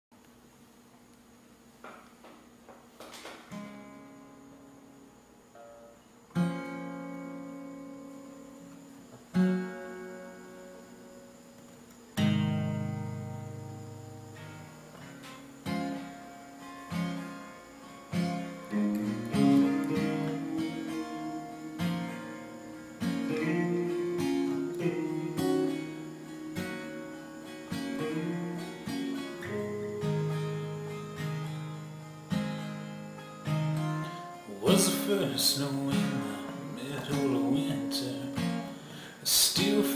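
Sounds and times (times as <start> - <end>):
acoustic guitar playing: 2.8 - 39.9.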